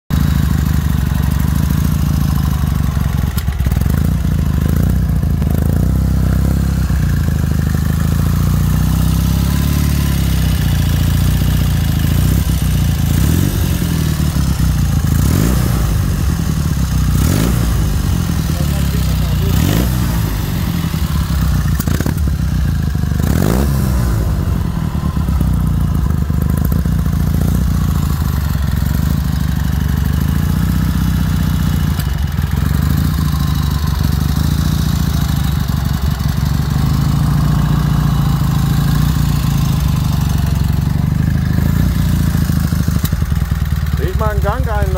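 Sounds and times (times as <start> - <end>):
motorcycle engine idling and revving: 0.1 - 44.9.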